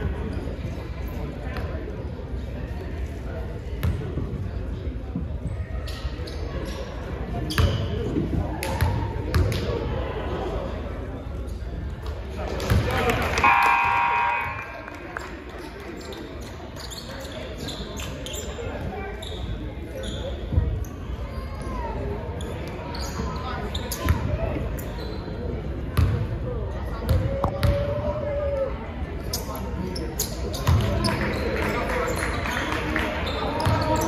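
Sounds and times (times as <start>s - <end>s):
short steady tone: 13.4s - 14.8s.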